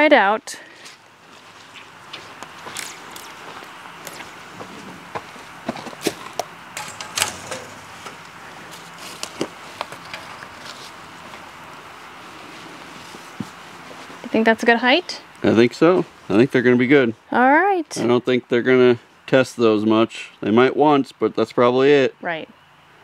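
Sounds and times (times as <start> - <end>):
steady outdoor hiss: 0.0 - 23.0
footsteps on soft dirt: 0.7 - 6.4, 7.7 - 16.4.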